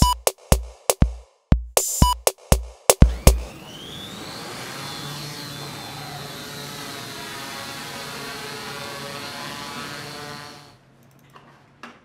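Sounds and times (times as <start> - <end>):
drone rotors whirring: 3.0 - 10.8.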